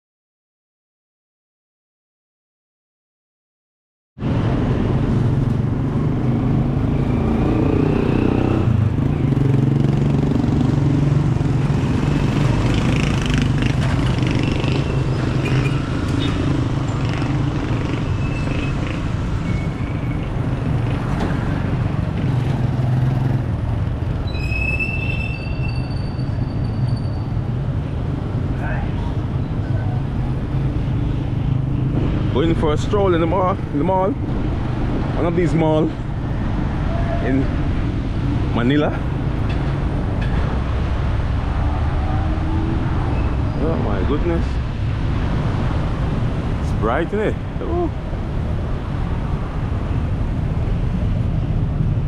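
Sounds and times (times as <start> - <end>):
traffic engine rumble: 4.2 - 52.0.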